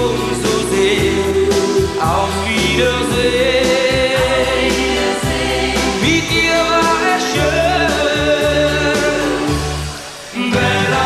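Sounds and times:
band playing steady beat: 0.0 - 11.0.

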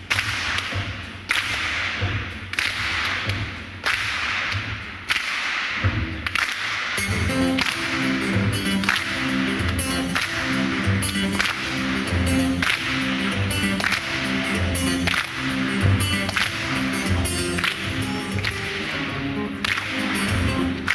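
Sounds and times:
sharp hand claps: 0.0 - 20.9
acoustic guitar plucked notes: 7.0 - 20.9.

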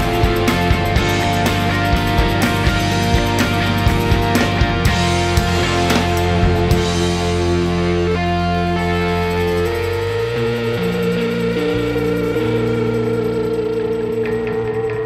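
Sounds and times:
bass guitar: 0.0 - 15.0
electric guitar chords: 0.0 - 15.0
keyboard: 0.0 - 15.0.

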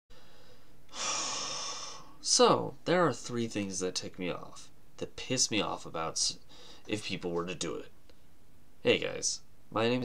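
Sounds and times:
man breathing close to microphone: 0.1 - 2.2, 6.5 - 6.9
faint room hiss: 0.1 - 10.0.

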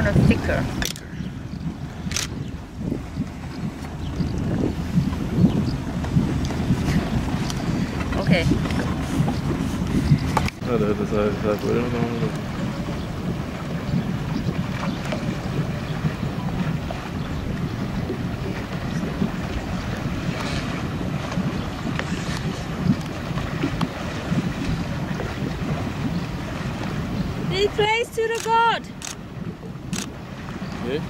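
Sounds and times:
motorboat engine rumble: 0.0 - 31.0
water wash: 0.0 - 31.0
wind buffeting microphone: 0.0 - 31.0.

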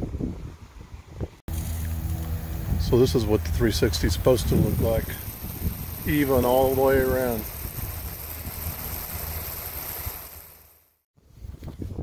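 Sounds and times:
low rumble: 1.5 - 9.6
sprinkler hissing: 1.5 - 11.0.

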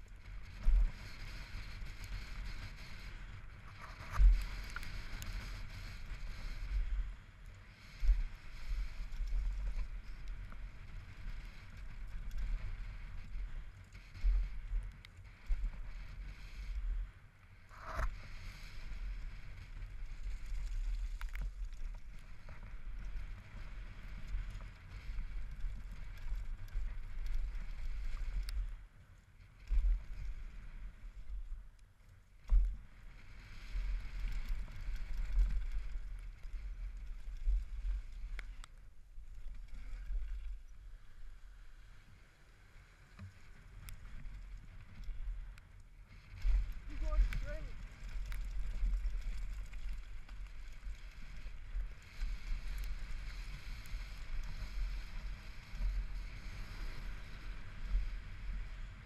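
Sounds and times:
bike tyres on dirt trail: 0.0 - 59.0
bike rattling over bumps: 45.6 - 57.1.

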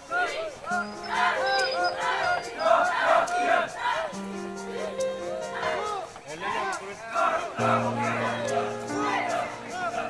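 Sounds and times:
men chanting in unison: 0.0 - 4.9, 5.5 - 10.0.

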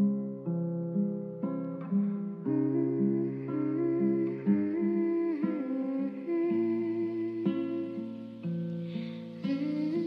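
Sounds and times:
guitar: 0.0 - 10.0
person humming melody: 2.5 - 8.2, 8.8 - 10.0.

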